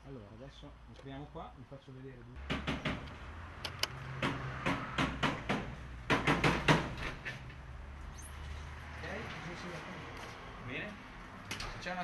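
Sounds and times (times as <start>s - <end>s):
glass door clicks and knocks: 2.4s - 3.1s, 4.2s - 7.4s.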